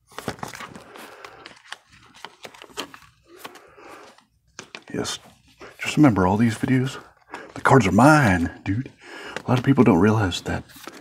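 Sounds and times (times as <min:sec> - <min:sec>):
plastic binder pages crinkling: 0:00.0 - 0:11.0.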